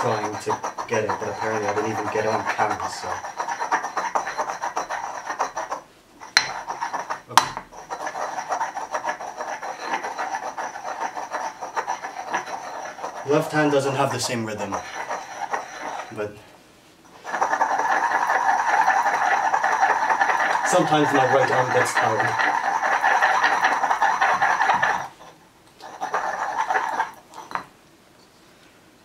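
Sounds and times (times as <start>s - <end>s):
stone pestle grinding in mortar: 0.0s - 16.3s, 17.1s - 27.7s.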